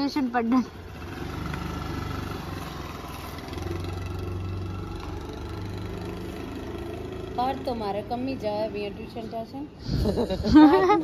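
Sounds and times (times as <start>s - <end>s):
scooter engine pulling away: 0.0s - 9.3s.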